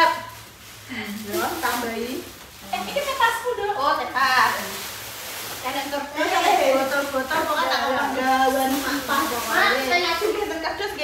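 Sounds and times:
plastic bags rustling: 0.0s - 11.0s
women talking: 0.9s - 4.9s, 5.6s - 11.0s.

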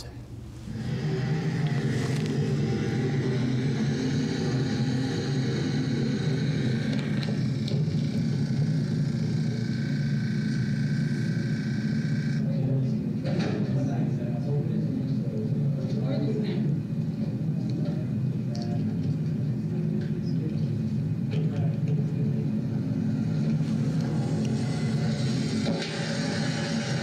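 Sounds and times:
low mechanical hum: 0.0s - 27.0s
faint high whine: 22.3s - 27.0s.

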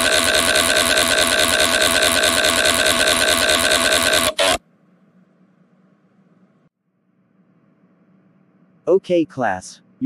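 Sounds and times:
faint hum: 4.4s - 10.0s.

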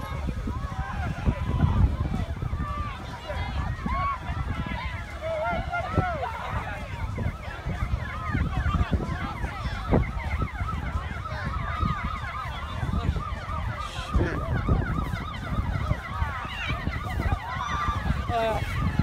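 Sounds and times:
emergency vehicle sirens: 0.0s - 19.0s
wind rumble on microphone: 0.0s - 19.0s.

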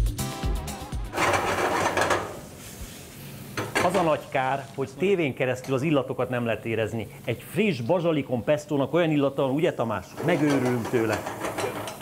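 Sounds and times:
background music with steady beat: 0.0s - 1.2s
pan clattering: 1.2s - 2.5s, 10.2s - 12.0s
food sizzling in frying pan: 1.2s - 12.0s.

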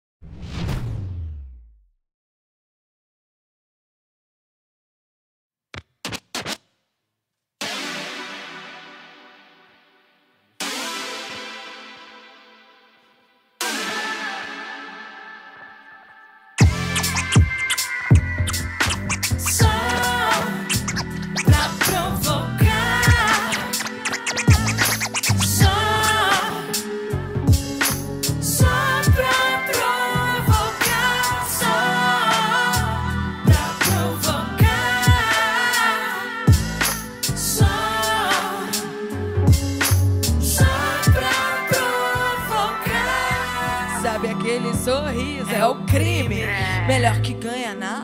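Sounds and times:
whoosh: 0.2s - 1.9s
turntable scratching: 5.8s - 6.8s, 16.6s - 26.8s
deep kick drum: 16.6s - 17.6s.

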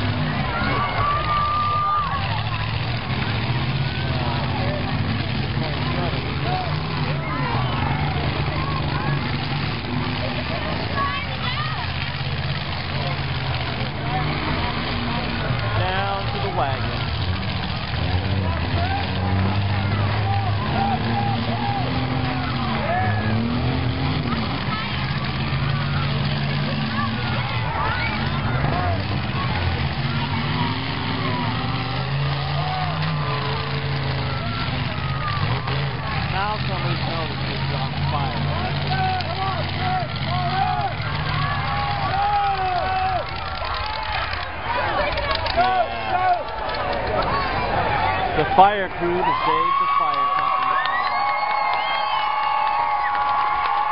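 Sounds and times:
car engines running and revving: 0.0s - 53.9s.

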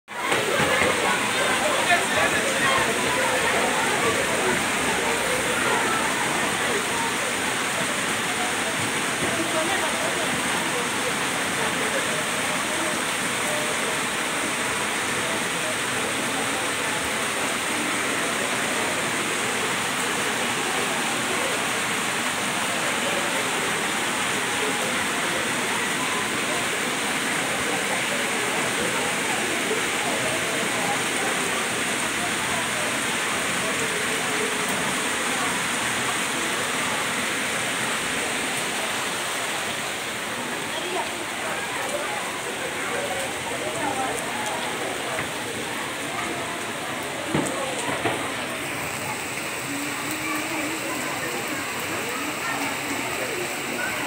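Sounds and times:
floodwater rushing down steps: 0.1s - 54.0s
heavy rain falling: 0.1s - 54.0s.

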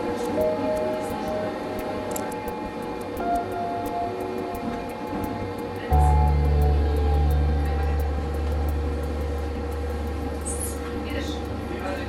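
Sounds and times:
tram humming: 0.0s - 12.0s.

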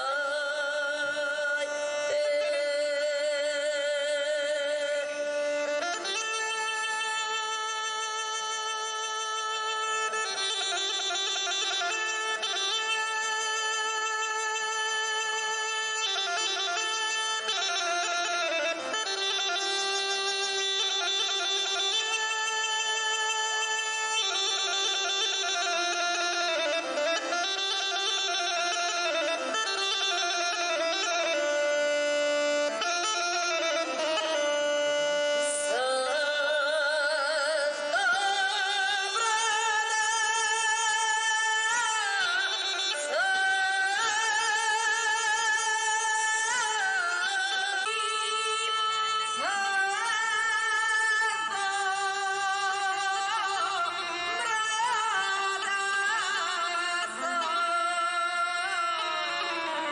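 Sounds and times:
bagpipe playing slow melody: 5.1s - 36.2s.

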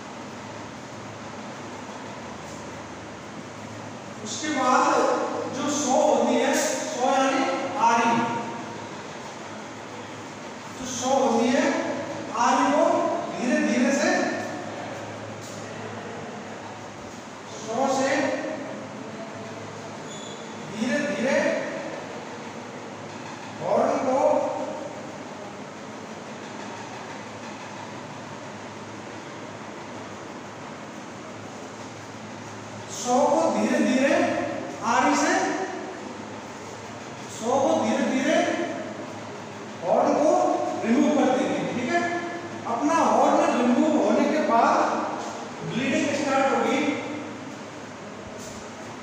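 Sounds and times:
room noise: 0.0s - 49.0s
man speaking: 4.2s - 8.6s, 10.8s - 14.8s, 17.5s - 18.7s, 20.7s - 21.9s, 23.6s - 24.9s, 32.9s - 36.0s, 37.3s - 39.0s, 39.8s - 47.3s.

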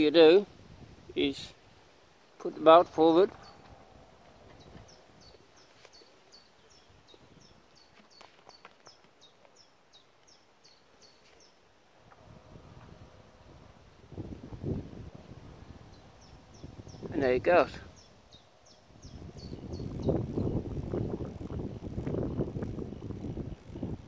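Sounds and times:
low rumbling on microphone: 2.8s - 5.6s, 12.1s - 24.0s
small bird chirping: 4.5s - 11.6s, 17.9s - 24.0s.

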